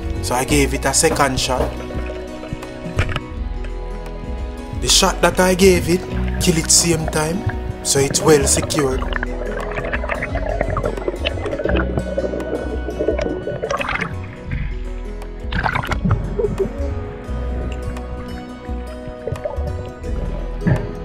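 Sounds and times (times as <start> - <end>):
background music with held tones: 0.0 - 21.0
rushes of water noise: 1.3 - 3.4, 6.0 - 21.0
pulsing low bass: 5.6 - 21.0.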